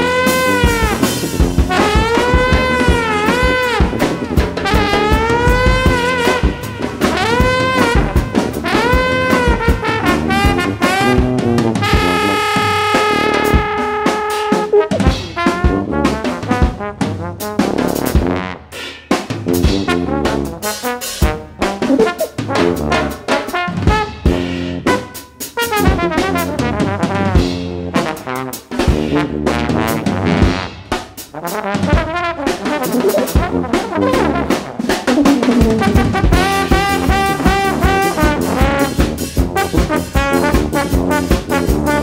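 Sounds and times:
drum hits: 0:00.0 - 0:13.9, 0:19.3 - 0:24.5, 0:28.8 - 0:42.0
brass jazz lines: 0:00.0 - 0:42.0.

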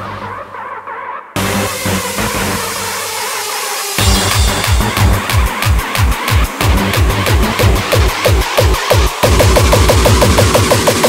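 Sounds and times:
distorted noise wash: 0:01.4 - 0:11.0
pounding kick drum: 0:04.0 - 0:11.0.

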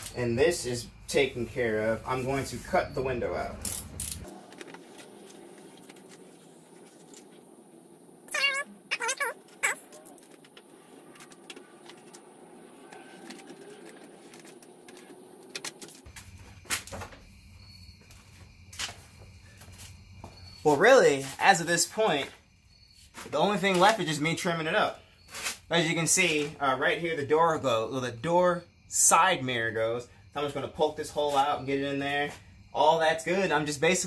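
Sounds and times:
high wavering cries: 0:08.3 - 0:10.3.

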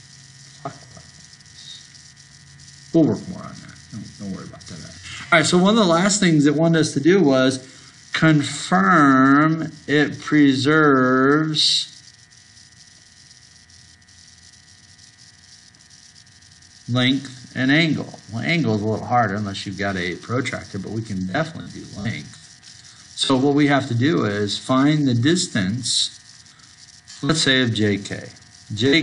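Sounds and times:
room noise and hiss: 0:00.0 - 0:29.0
steady electrical hum: 0:00.0 - 0:29.0.

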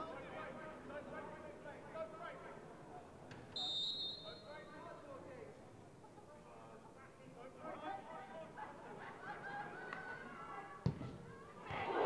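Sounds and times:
referee's whistle blast: 0:03.6 - 0:04.6
crowd voices: 0:05.6 - 0:12.0.

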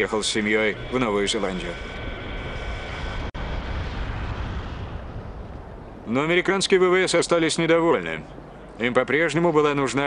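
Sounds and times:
steady low rumble with hiss: 0:00.0 - 0:10.0.

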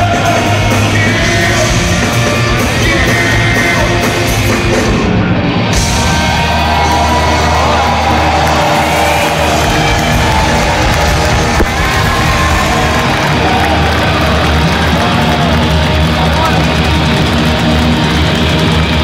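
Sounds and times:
crowd shouting and cheering: 0:00.0 - 0:19.0
rock band playing: 0:00.0 - 0:19.0.

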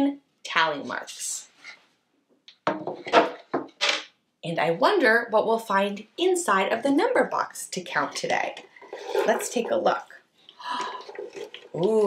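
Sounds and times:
wooden knocks and scrapes: 0:02.6 - 0:04.1
wooden box dragged across floor: 0:08.8 - 0:09.8.

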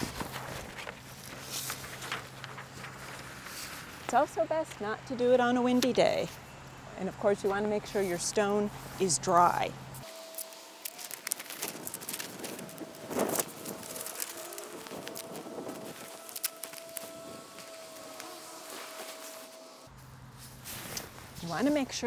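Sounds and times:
paper crackling and rustling: 0:00.0 - 0:04.3, 0:10.0 - 0:21.8.

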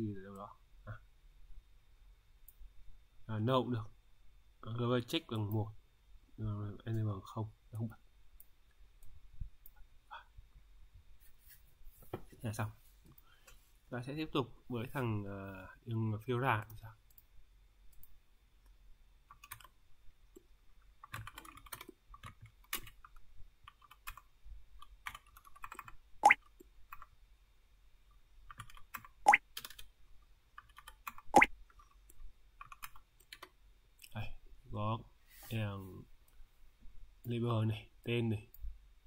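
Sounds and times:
computer keys or mouse clicking: 0:19.3 - 0:19.8, 0:21.0 - 0:27.1, 0:28.5 - 0:29.9, 0:30.6 - 0:33.6.

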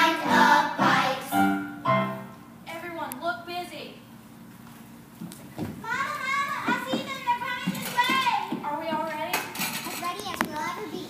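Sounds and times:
children talking and calling out: 0:05.8 - 0:11.0.

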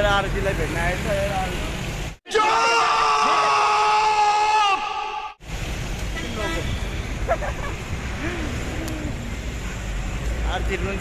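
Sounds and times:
traffic rumbling past: 0:05.4 - 0:11.0.

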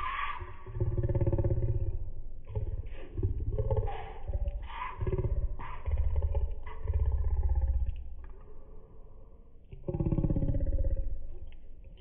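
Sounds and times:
man talking in low muffled voice: 0:00.0 - 0:07.9.

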